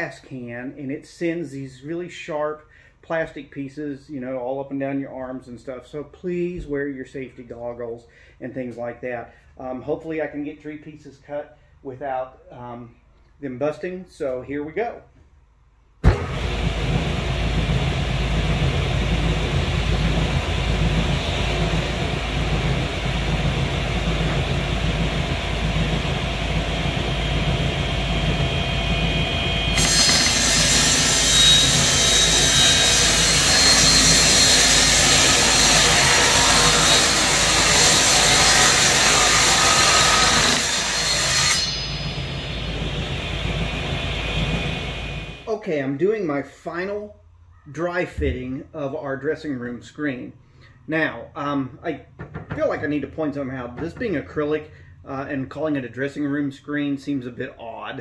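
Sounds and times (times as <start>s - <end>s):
table saw running: 16.0s - 45.5s
saw blade cutting acrylic: 29.7s - 42.2s.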